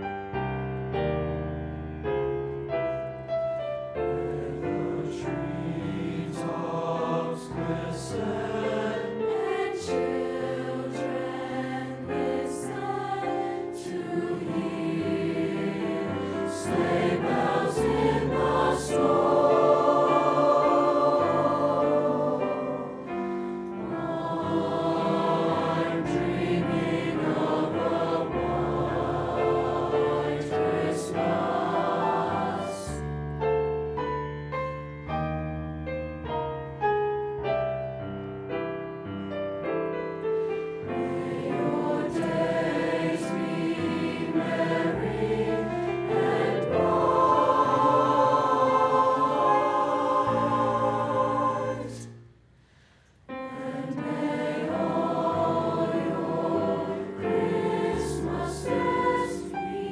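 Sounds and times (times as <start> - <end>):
mixed choir singing: 4.1 - 33.1, 40.7 - 52.2, 53.3 - 59.9.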